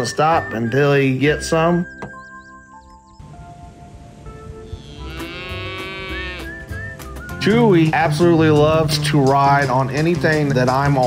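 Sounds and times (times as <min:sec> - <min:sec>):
background music: 0:00.0 - 0:11.0
calf mooing: 0:04.6 - 0:06.6.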